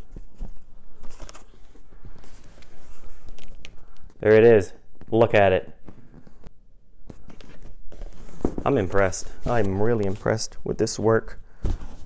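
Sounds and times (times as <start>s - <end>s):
cardboard box handling noise: 7.1s - 10.3s.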